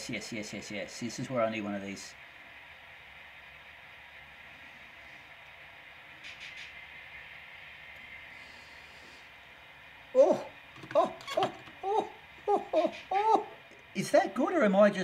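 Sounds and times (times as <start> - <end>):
low steady hiss: 0.0 - 15.0.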